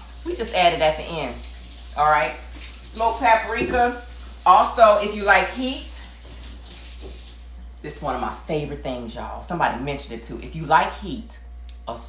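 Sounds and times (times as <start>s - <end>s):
pot cooking with watery hiss: 0.0s - 7.5s.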